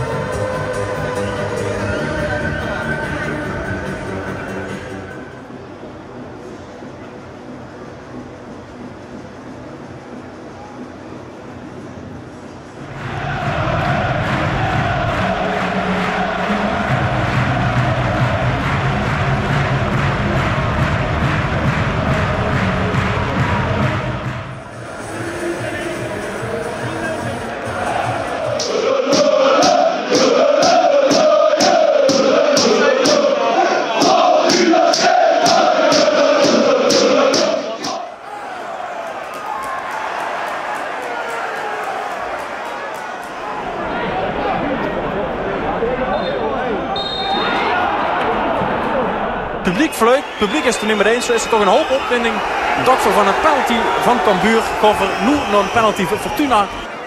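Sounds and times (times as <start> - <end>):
stadium crowd singing and chanting: 0.0 - 5.7, 12.4 - 57.0
rhythmic claps: 13.3 - 26.7, 27.6 - 38.1
music with steady bass: 13.6 - 27.1.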